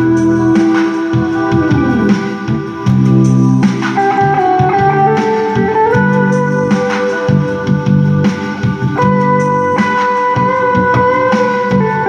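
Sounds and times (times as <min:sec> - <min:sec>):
bass: 0:00.0 - 0:12.0
electric guitar melody: 0:00.0 - 0:12.0
organ-like keyboard: 0:00.0 - 0:12.0.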